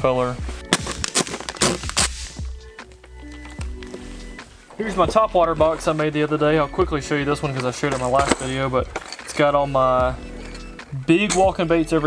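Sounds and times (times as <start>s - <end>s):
background music: 0.0s - 12.0s
plastic boxes clicking and rustling: 0.8s - 2.0s.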